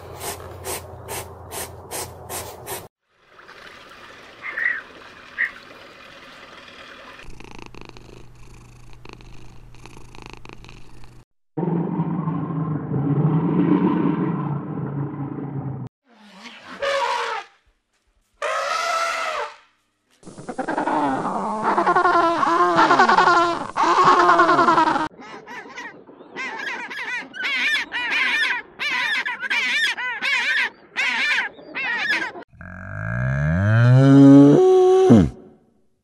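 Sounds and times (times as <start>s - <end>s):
bending animal calls: 20.3s - 35.4s
cow mooing: 32.5s - 35.5s.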